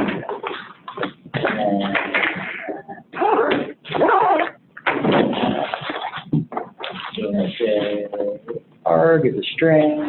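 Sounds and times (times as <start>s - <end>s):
person making wordless vocal sounds: 1.3s - 4.5s.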